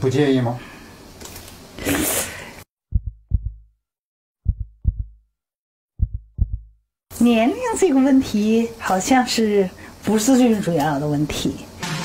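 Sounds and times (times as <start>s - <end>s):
heartbeat double thumps: 2.9s - 3.8s, 4.4s - 5.2s, 6.0s - 6.8s.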